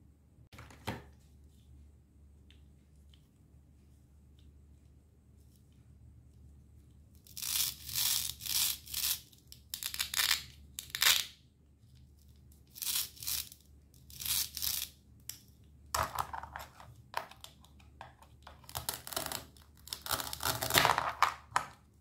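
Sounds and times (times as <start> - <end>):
hook-and-loop fastener ripping: 7.3 - 11.3, 18.6 - 20.9.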